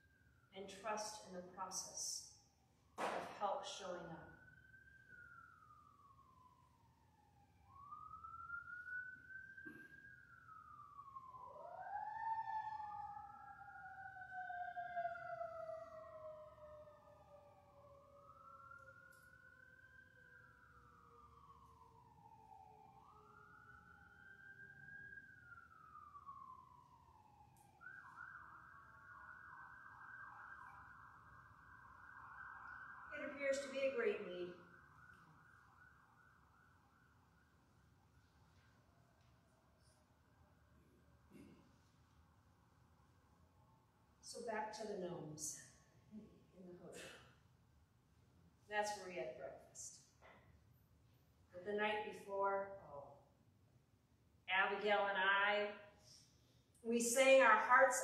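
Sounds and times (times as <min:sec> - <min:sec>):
faint wailing siren: 0:00.0 - 0:58.0
second wailing siren tone: 0:02.6 - 0:41.6.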